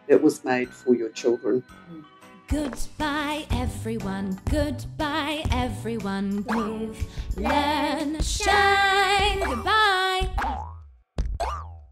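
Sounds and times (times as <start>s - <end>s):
cartoon boing sound effects: 10.4s - 11.9s.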